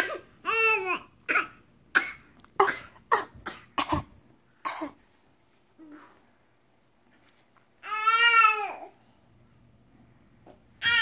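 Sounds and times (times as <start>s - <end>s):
person coughing: 0.0s - 0.4s, 1.3s - 5.0s.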